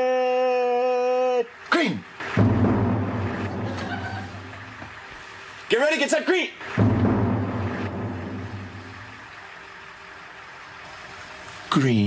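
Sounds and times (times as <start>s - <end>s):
bus engine humming: 1.5s - 5.7s, 6.6s - 12.0s.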